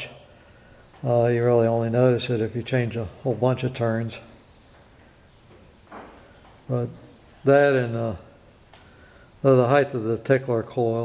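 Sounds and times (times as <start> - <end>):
faint high-pitched whine: 0.0 - 11.0
man breathing: 0.2 - 1.0, 8.8 - 9.4
man speaking word: 6.7 - 8.3.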